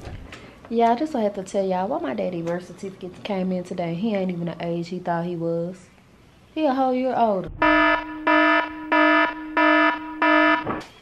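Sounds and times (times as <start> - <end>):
electronic alarm beeping: 7.6 - 10.8.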